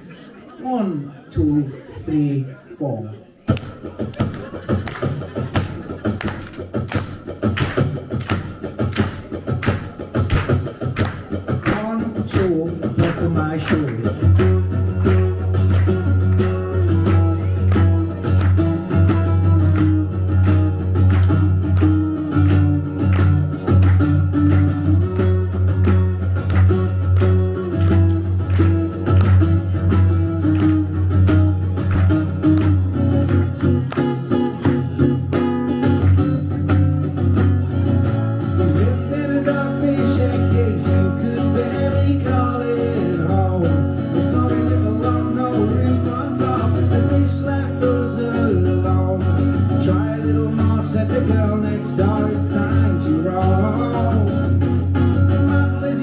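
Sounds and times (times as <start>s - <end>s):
acoustic guitar strumming: 3.5s - 56.0s.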